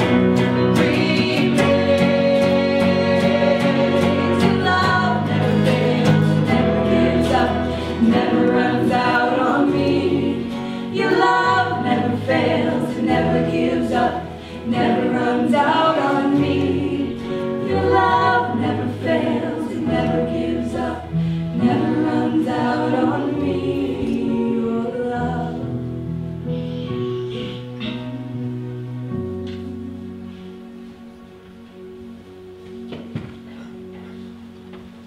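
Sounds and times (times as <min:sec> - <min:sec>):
electric guitar: 0:00.0 - 0:13.3
bass guitar: 0:00.0 - 0:19.2
keyboard: 0:00.0 - 0:35.0.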